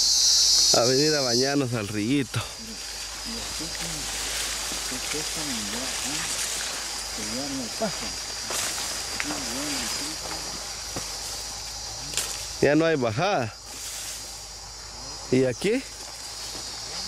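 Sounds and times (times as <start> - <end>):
high-pitched insect buzz: 0.0 - 17.0
quiet voices talking: 0.8 - 10.7.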